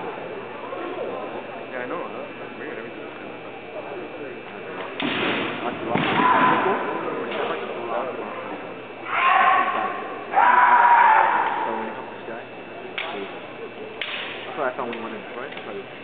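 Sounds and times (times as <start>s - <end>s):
fighters shouting: 6.0s - 6.9s, 9.0s - 12.0s.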